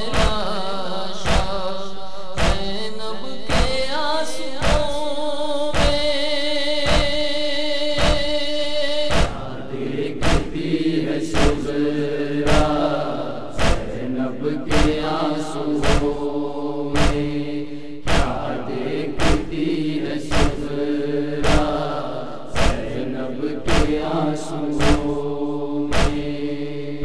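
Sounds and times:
steady thump: 2.4 - 2.6, 8.0 - 8.3, 9.1 - 9.5, 10.2 - 11.7, 12.4 - 12.9, 13.5 - 14.0, 14.7 - 15.1, 15.8 - 16.2, 16.9 - 20.8, 21.4 - 21.9, 22.5 - 23.0, 23.7 - 24.0, 24.7 - 25.2, 25.9 - 26.4
group of voices chanting: 9.0 - 27.0.

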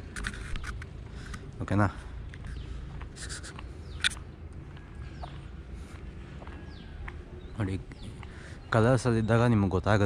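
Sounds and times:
camera handling noise: 0.0 - 1.5, 3.9 - 4.2.

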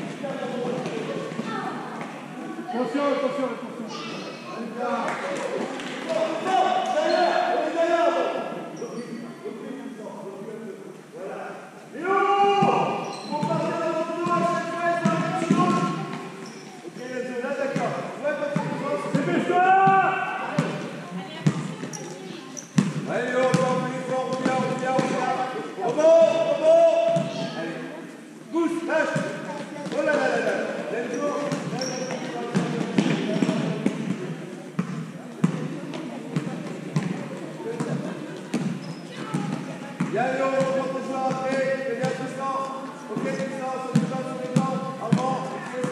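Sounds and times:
basketball bouncing on floor: 20.6 - 22.0, 22.8 - 25.2, 31.4 - 34.2, 36.4 - 37.2.

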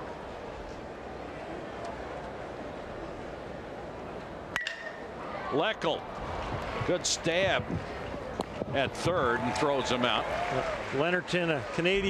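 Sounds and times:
ballpark crowd noise: 0.0 - 12.0
metal bat hitting ball ping: 4.6 - 5.1.

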